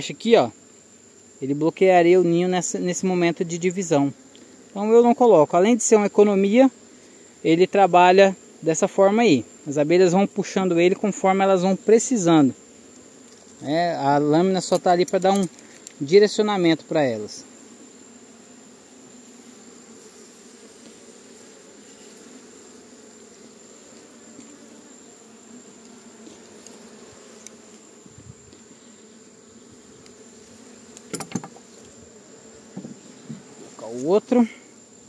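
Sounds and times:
honeybees buzzing: 0:00.0 - 0:35.0.

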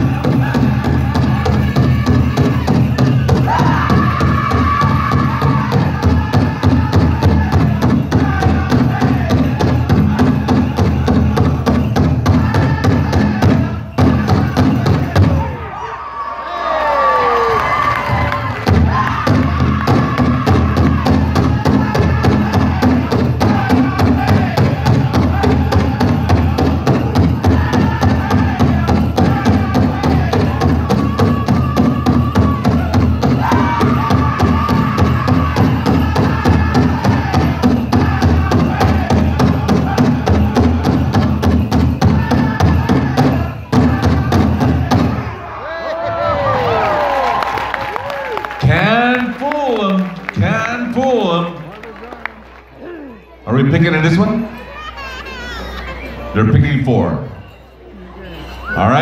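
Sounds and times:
big drum beat: 0:00.0 - 0:15.5, 0:18.1 - 0:45.3
singers high voices: 0:00.0 - 0:51.2, 0:52.7 - 0:59.0.

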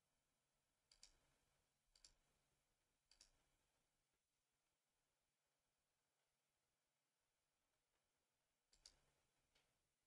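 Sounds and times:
computer mouse clicks: 0:00.9 - 0:01.2, 0:01.9 - 0:02.2, 0:03.1 - 0:03.4, 0:08.7 - 0:09.7.

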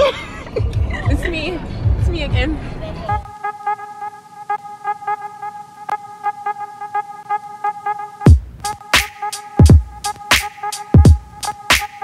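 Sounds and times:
synth music with repeating notes: 0:03.2 - 0:12.0.

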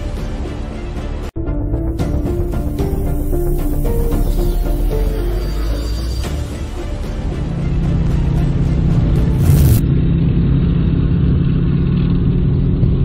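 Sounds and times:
vehicle engine droning and revving: 0:00.0 - 0:13.0.

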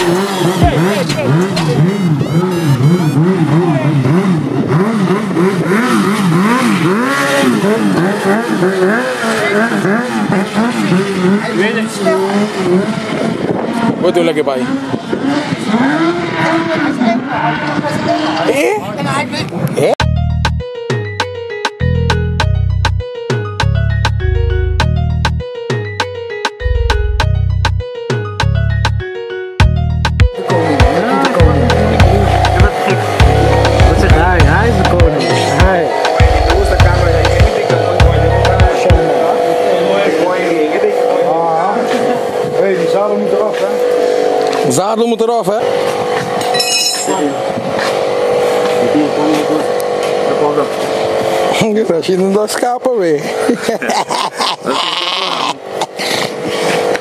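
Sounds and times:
motorcycle engine revving: 0:00.0 - 0:19.4, 0:30.2 - 0:53.7
people talking: 0:00.4 - 0:02.1, 0:09.2 - 0:12.5, 0:14.0 - 0:14.7, 0:16.6 - 0:20.0, 0:30.4 - 0:43.9, 0:44.6 - 0:45.7, 0:47.0 - 0:47.5, 0:48.8 - 0:50.8, 0:51.5 - 0:54.0.

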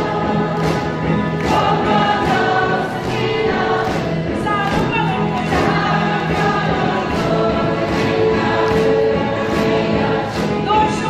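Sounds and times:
band accompaniment: 0:00.0 - 0:11.0
congregation singing gospel song: 0:00.0 - 0:11.0
steady drum beat: 0:00.0 - 0:11.0.

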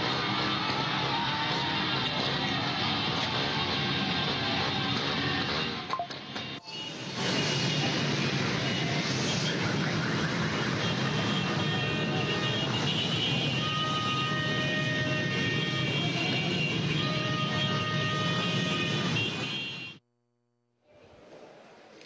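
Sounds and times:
crowd noise: 0:00.0 - 0:19.4
motorcycles: 0:00.0 - 0:19.7.

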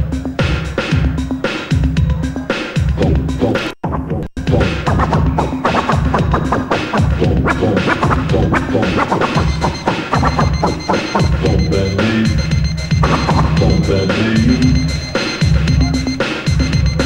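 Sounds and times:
steady drum beat: 0:00.0 - 0:17.0
vinyl record scratching: 0:00.1 - 0:17.0.

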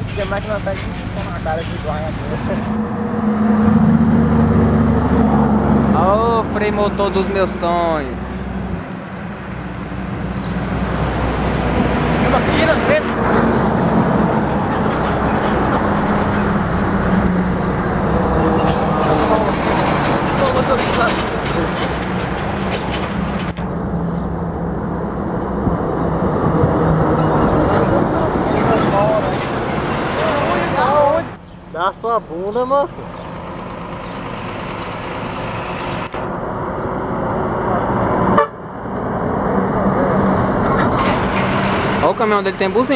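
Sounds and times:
diesel truck engine drone: 0:00.0 - 0:42.9
tyre and road noise: 0:00.0 - 0:42.9.

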